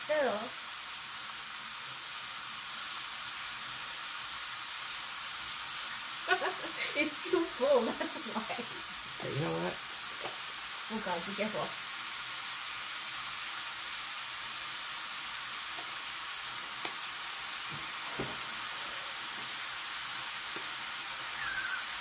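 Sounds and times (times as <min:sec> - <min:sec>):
pepper sizzling in oil: 0:00.0 - 0:22.0.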